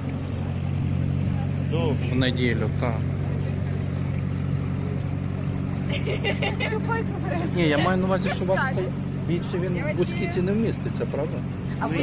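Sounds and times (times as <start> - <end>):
motor boat engine droning: 0.0 - 12.0.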